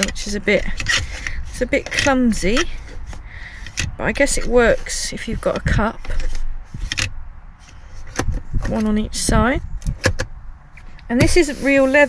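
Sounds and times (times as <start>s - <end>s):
plastic cup holder rattling: 0.0s - 7.1s, 9.8s - 10.3s.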